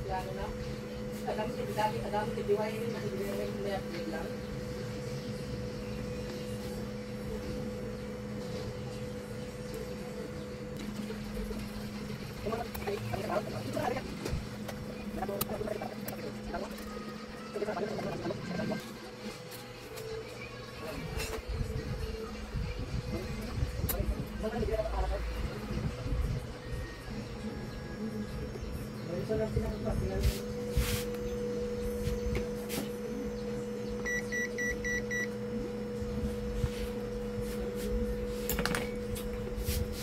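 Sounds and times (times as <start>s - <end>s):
steady low hum: 0.0s - 40.0s
faint voices: 6.5s - 33.9s.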